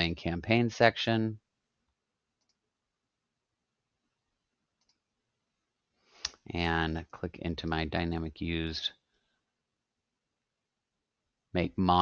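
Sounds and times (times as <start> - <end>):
faint computer mouse clicks: 2.4 - 2.6, 4.8 - 5.1.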